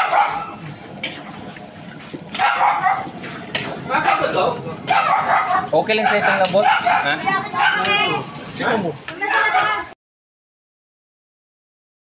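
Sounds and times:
dog barking: 0:00.0 - 0:00.6, 0:02.4 - 0:03.1, 0:04.0 - 0:07.9.

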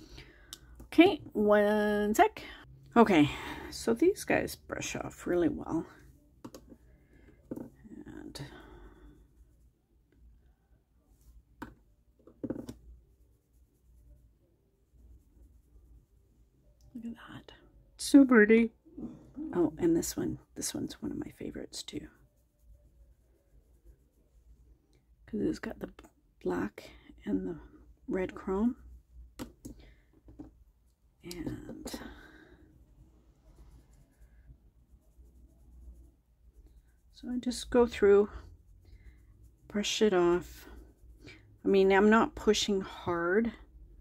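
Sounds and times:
soft brush strokes: 0:03.7 - 0:17.0, 0:19.0 - 0:26.2, 0:30.8 - 0:42.8
faint soft rubbing: 0:04.6 - 0:16.8, 0:19.0 - 0:24.9, 0:29.9 - 0:42.8.

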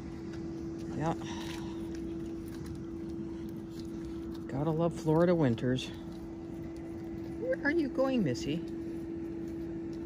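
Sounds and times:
low background rumble: 0:00.0 - 0:10.0
mechanical hum: 0:00.0 - 0:10.0.

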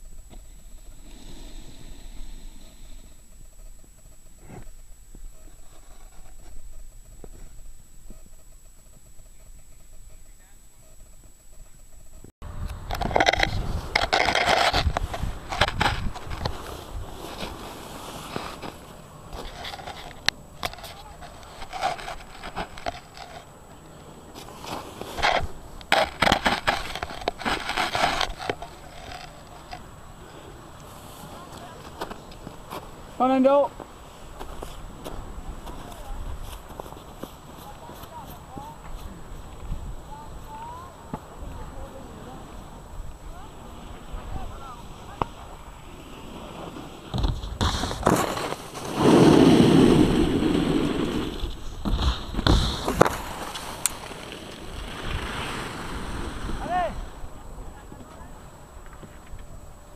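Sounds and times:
snow and clothing scraping camera: 0:00.0 - 0:59.9.

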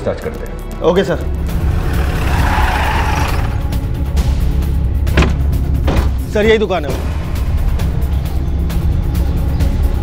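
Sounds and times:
tyre skid: 0:01.7 - 0:03.8.

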